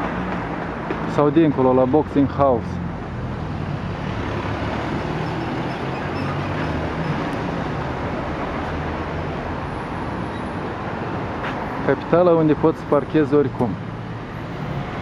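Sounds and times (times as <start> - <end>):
city street traffic: 0.0 - 15.0.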